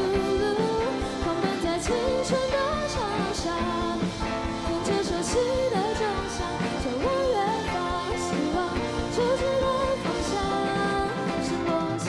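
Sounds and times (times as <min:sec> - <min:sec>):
girl singing: 0:00.0 - 0:12.0
live pop-rock band: 0:00.0 - 0:12.0.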